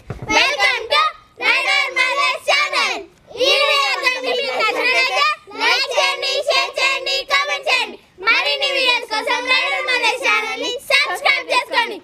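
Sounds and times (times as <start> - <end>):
children singing in unison: 0.3 - 12.0.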